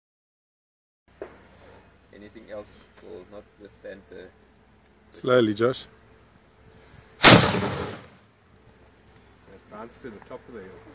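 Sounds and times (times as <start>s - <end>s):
cannon blast: 7.2s - 8.2s.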